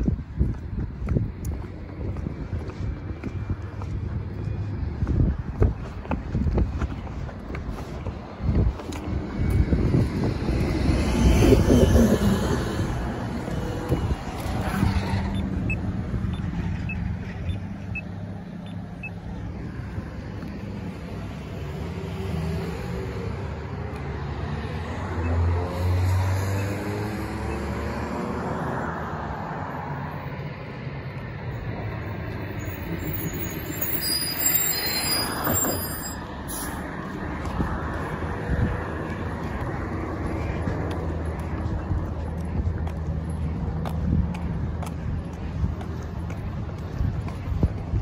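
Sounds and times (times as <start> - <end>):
street traffic: 0.0 - 48.0
tyre noise on road: 0.0 - 48.0
bus engine pulling away: 7.7 - 44.8.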